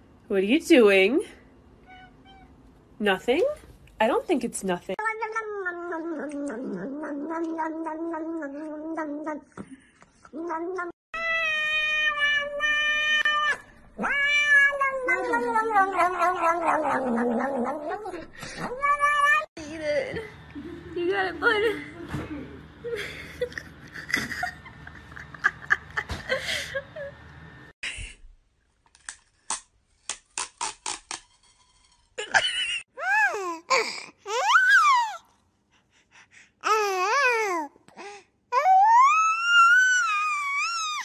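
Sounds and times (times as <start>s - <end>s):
cat meowing: 5.0s - 9.4s, 10.4s - 17.6s.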